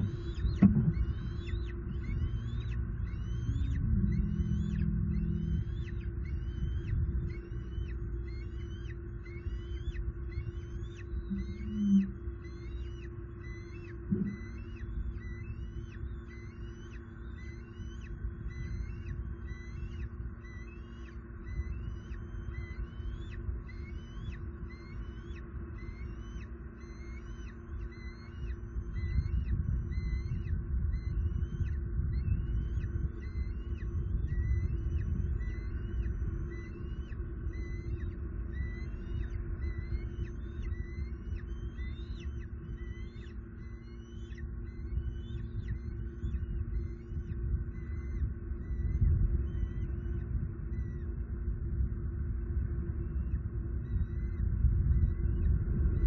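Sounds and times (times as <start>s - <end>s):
faint high chirp: 0.0s - 51.8s, 52.4s - 56.0s
low hum and rumble: 0.0s - 56.0s.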